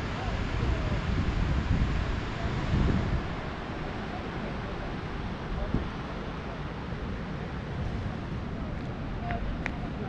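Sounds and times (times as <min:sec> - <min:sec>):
surf breaking on beach: 0:00.0 - 0:10.0
wind buffeting microphone: 0:00.0 - 0:10.0.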